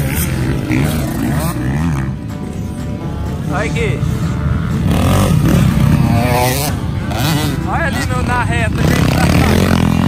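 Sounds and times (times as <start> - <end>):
dirt bike engine revving: 0.0 - 10.0
distant dirt bikes running: 0.0 - 10.0.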